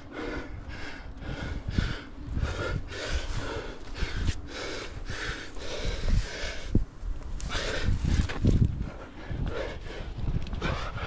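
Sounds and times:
person breathing hard: 0.0 - 11.0.

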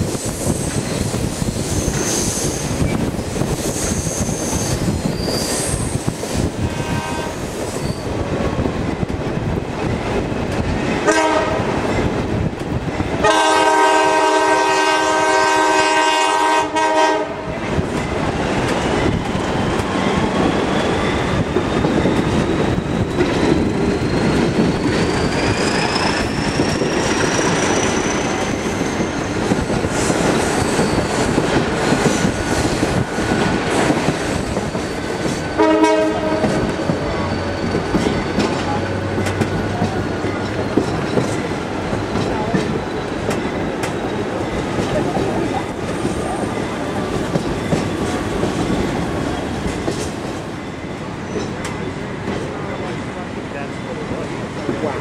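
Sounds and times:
train wheels rumbling on rails: 0.0 - 55.0
high wheel squeal: 0.3 - 6.4, 7.3 - 8.1, 19.5 - 29.4, 30.5 - 31.4, 34.4 - 35.6, 36.5 - 39.0.

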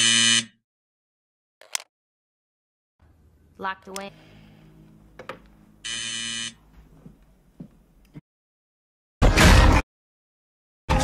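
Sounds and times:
door buzzer: 0.0 - 0.6, 5.8 - 6.6.

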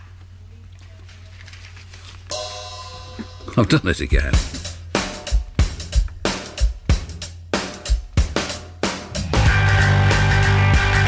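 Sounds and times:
sustained ringing chord: 2.3 - 5.2
cymbal wash: 2.3 - 10.7
low hum: 2.3 - 11.0
rock band playing: 2.3 - 11.0.

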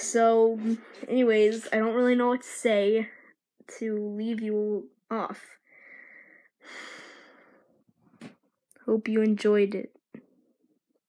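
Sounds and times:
person breathing: 5.6 - 7.8.

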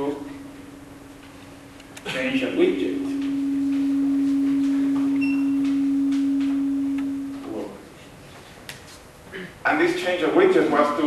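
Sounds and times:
feedback tone: 0.0 - 7.8.

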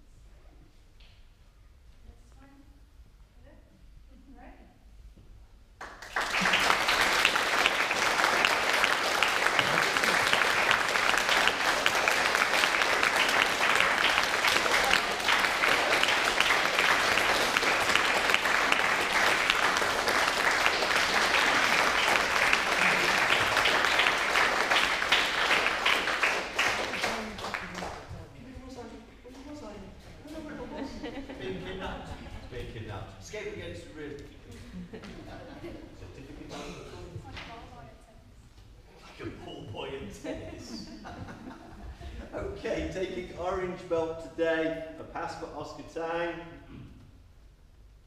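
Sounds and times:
people applauding: 5.8 - 28.2.

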